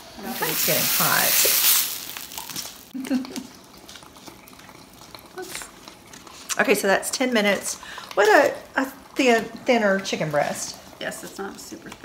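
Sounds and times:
food sizzling: 0:00.0 - 0:12.0.

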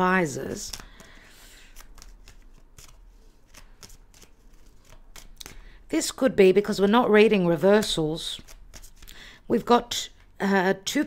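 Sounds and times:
cards being shuffled: 0:00.4 - 0:05.8, 0:07.8 - 0:09.2.

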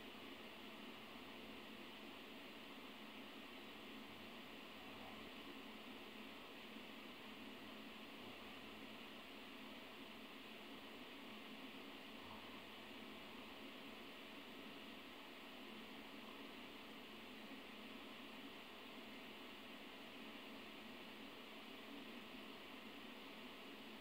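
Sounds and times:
recording hiss: 0:00.0 - 0:24.0.

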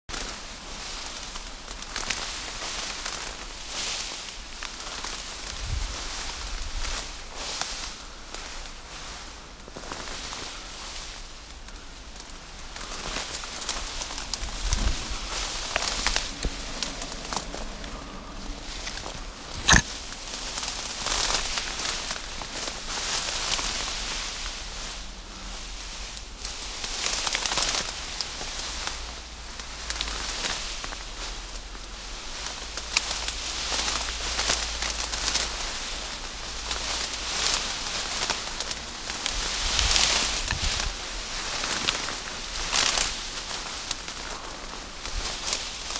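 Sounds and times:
tall grass rustling against camera: 0:00.1 - 0:45.9.

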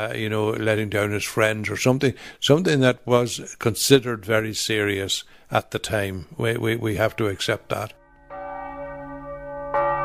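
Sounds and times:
church bell ringing: 0:08.0 - 0:10.0.

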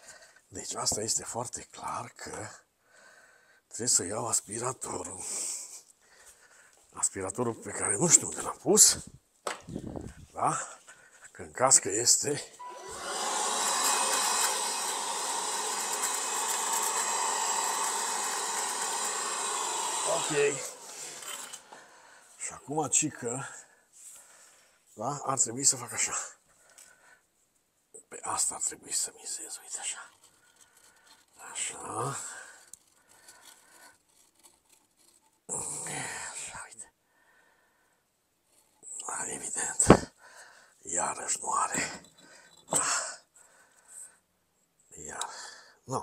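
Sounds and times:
handheld vacuum cleaner running: 0:12.6 - 0:21.9
caulking nozzle scraping brick: 0:13.8 - 0:21.8, 0:30.0 - 0:35.5.

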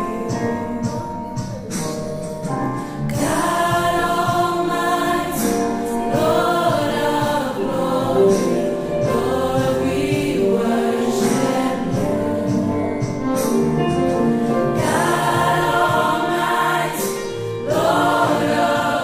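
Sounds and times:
choir singing in harmony: 0:02.9 - 0:19.0.

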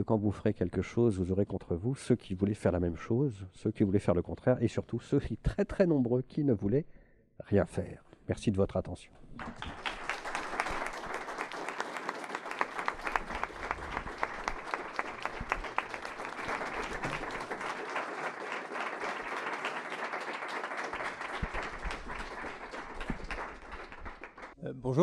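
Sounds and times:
audience applauding: 0:09.4 - 0:24.6.

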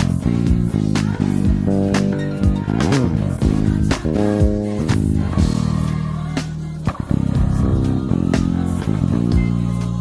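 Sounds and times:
electric bass playing: 0:00.0 - 0:10.0.

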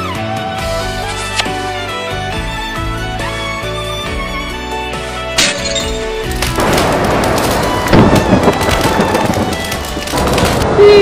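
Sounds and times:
crackling rain downpour: 0:06.5 - 0:11.0
rolling thunderclap: 0:06.6 - 0:11.0.

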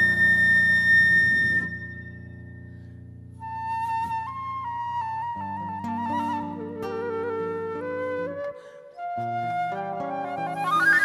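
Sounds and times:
flute holding high note: 0:00.0 - 0:02.3.

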